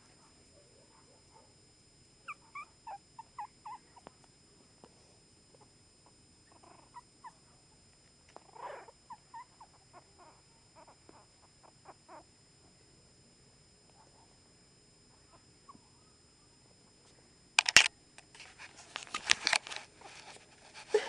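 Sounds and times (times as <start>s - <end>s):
puppy squeaking: 2.3s - 3.8s, 6.5s - 7.1s, 8.5s - 11.2s
puppy crying: 2.3s - 4.0s, 6.5s - 7.4s, 8.5s - 12.3s.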